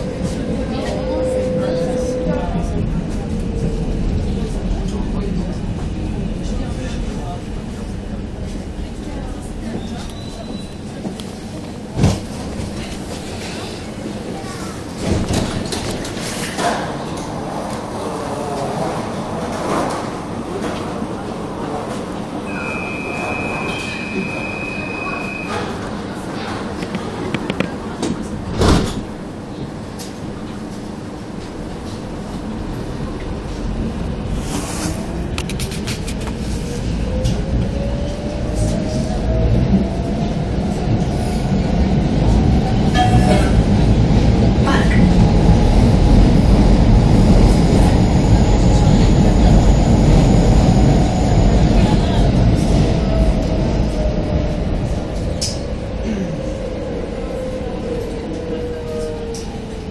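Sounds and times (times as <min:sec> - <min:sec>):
metro train braking: 0:00.0 - 0:04.6, 0:22.2 - 0:26.7, 0:36.7 - 0:59.9
wheels rumbling on rail: 0:00.0 - 0:59.9
high-pitched brake squeal: 0:22.5 - 0:25.7.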